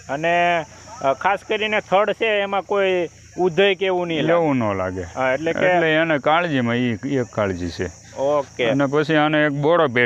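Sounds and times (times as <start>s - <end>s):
high-pitched insect drone: 0.0s - 10.0s
man speaking: 0.0s - 10.0s.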